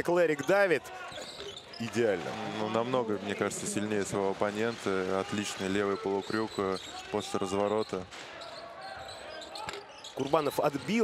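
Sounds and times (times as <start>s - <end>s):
low court noise: 0.0s - 11.0s.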